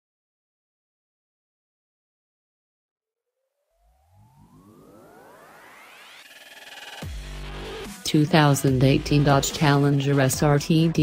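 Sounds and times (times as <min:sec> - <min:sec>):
synthesized rising tones: 0:03.5 - 0:08.0.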